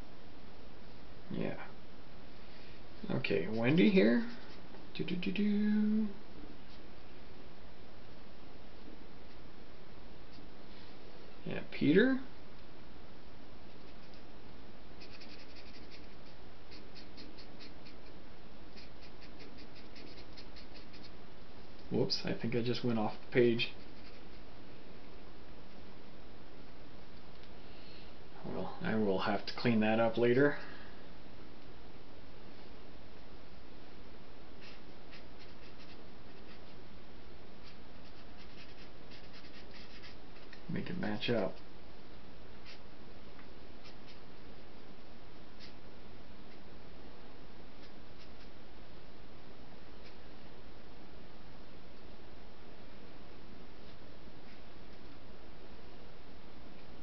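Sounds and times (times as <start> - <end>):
steady background hiss: 0.0 - 57.0
pen scratching on paper: 4.2 - 4.6, 13.8 - 14.2, 15.0 - 18.2, 18.8 - 21.2, 23.7 - 24.4, 34.6 - 36.8, 37.6 - 40.6.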